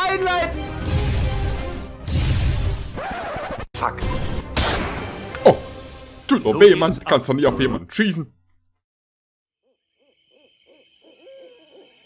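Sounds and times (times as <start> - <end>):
faint hooting bird calls: 9.6 - 12.0.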